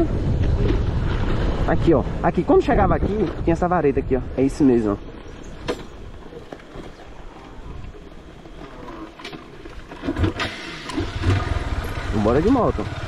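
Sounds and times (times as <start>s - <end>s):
motorcycle engine idling: 10.5s - 13.0s.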